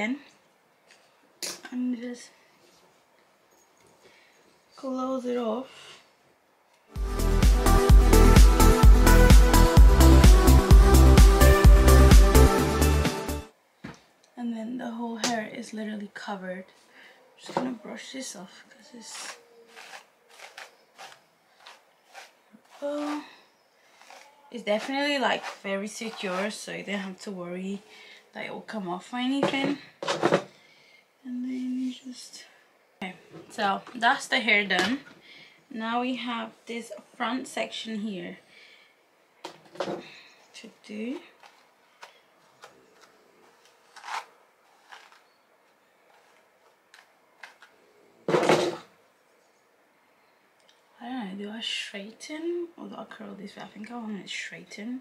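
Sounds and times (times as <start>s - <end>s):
hairbrush swishing through hair: 19.1s - 23.3s, 24.0s - 26.9s.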